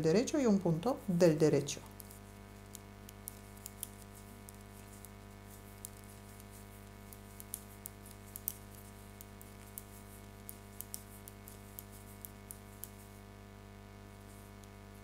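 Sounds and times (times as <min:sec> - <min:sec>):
steady low hum: 0:00.0 - 0:15.0
metal knitting needles clicking: 0:02.0 - 0:05.1, 0:05.7 - 0:13.0.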